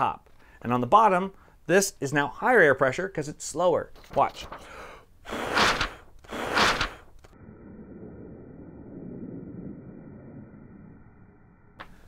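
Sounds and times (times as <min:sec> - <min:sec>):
person blowing across paper: 0:05.2 - 0:07.2.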